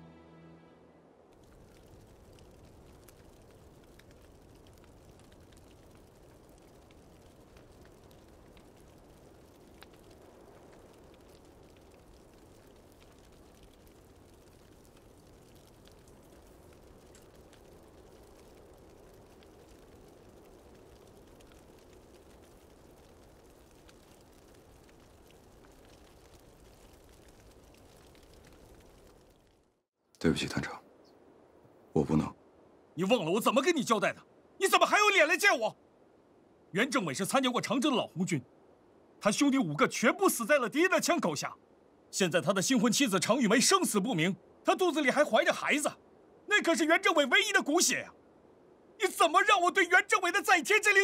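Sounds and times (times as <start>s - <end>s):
grass fire burning: 1.2s - 51.0s.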